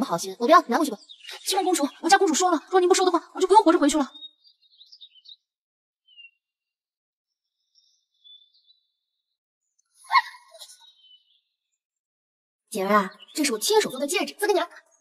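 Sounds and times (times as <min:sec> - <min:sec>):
faint bird chirps: 0:00.0 - 0:12.0, 0:12.7 - 0:15.0.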